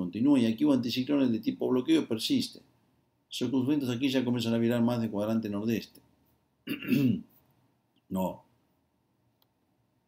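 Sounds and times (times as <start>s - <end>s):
man clearing his throat: 6.7s - 7.3s.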